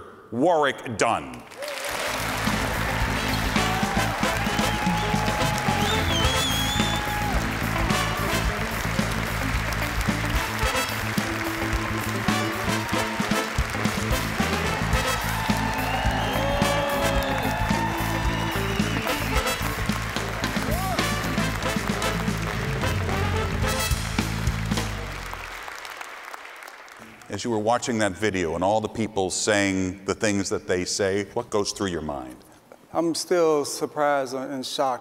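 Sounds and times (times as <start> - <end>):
audience applause: 1.5 - 27.3
music playing: 2.0 - 25.7.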